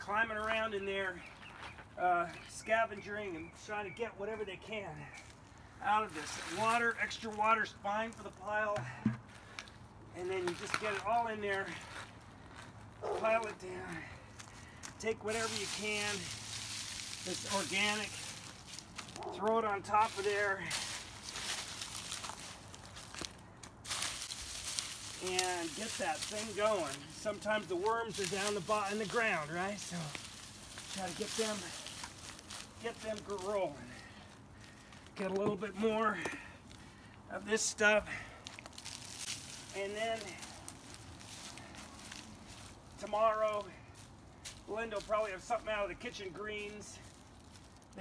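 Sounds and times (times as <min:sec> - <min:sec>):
dry leaves rustling and crackling: 0:05.0 - 0:48.0.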